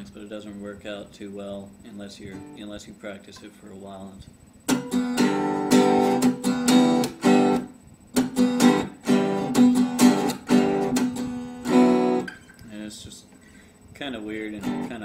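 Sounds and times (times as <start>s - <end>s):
acoustic guitar strumming: 1.9s - 4.0s, 4.6s - 15.0s.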